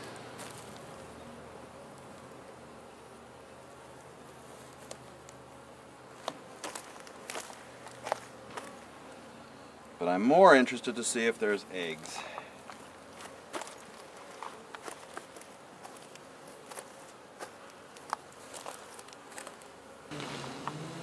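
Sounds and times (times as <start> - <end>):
honeybees buzzing: 0.0 - 21.0.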